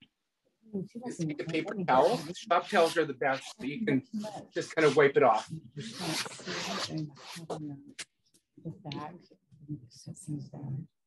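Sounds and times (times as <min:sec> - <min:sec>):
scratchy rubbing on canvas: 0:01.5 - 0:07.6.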